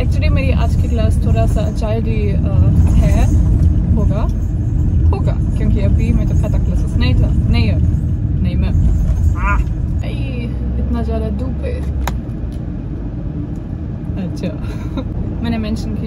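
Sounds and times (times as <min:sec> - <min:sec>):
car engine rumble inside cabin: 0:00.0 - 0:16.0.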